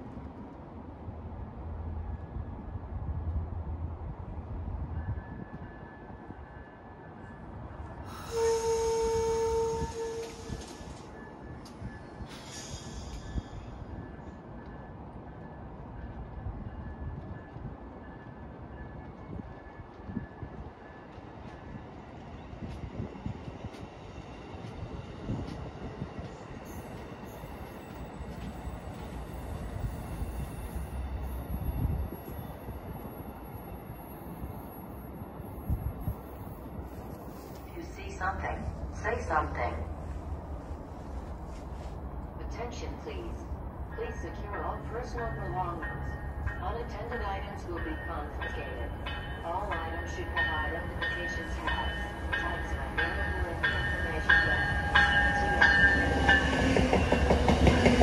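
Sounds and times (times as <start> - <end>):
train rumble: 0.0 - 58.0.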